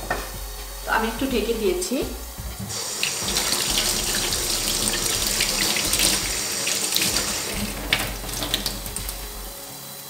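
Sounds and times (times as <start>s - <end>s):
kitchen tap running: 0.0s - 10.0s.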